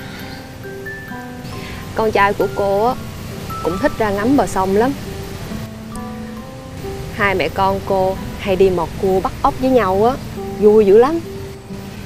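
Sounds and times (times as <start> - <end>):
soft music of held notes: 0.0 - 12.0
steady low hiss: 0.0 - 12.0.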